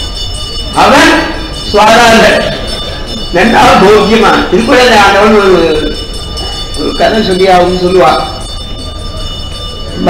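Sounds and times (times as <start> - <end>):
man speaking: 0.8 - 2.7, 3.3 - 6.0, 6.8 - 8.4.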